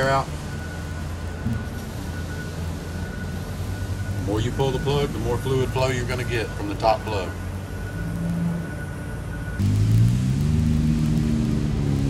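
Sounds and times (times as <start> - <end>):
engine humming: 0.0 - 12.0
thin high whine: 0.0 - 12.0.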